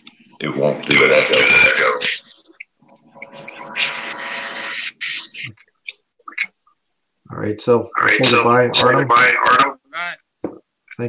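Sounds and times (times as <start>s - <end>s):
voice over video call: 7.2s - 11.0s.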